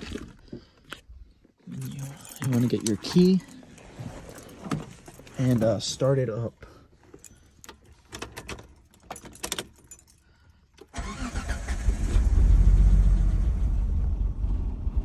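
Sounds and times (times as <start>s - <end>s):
keys jangling: 1.7s - 5.8s, 7.0s - 10.9s
car engine cranking and starting: 7.0s - 15.0s
ignition clicks: 10.8s - 12.3s.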